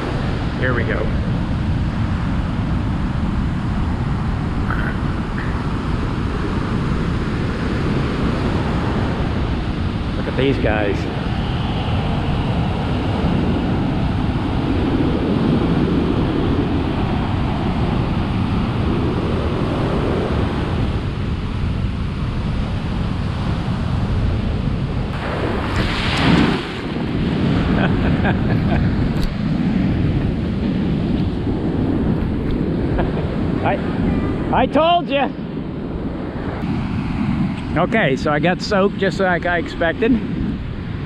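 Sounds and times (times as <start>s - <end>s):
ocean surf breaking on beach: 0.0s - 41.0s
wind rumble on microphone: 0.0s - 41.0s.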